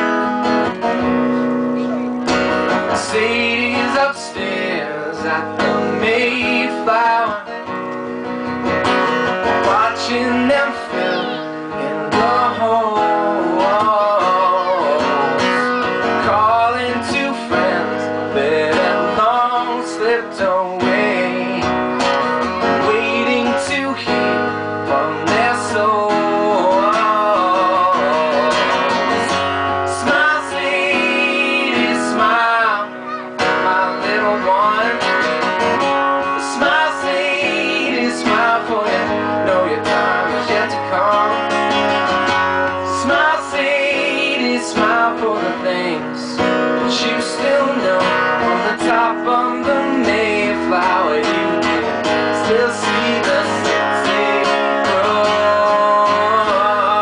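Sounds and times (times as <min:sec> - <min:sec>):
strummed acoustic guitar: 0:00.0 - 0:57.0
man singing: 0:02.7 - 0:07.8, 0:09.4 - 0:57.0.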